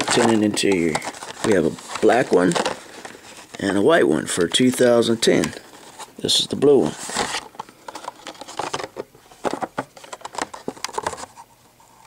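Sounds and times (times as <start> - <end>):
plastic packaging crackling: 0.0 - 6.0.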